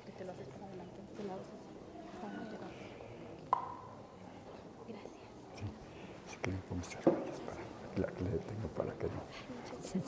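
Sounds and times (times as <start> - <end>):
murmured voices and whispering: 0.0 - 10.0.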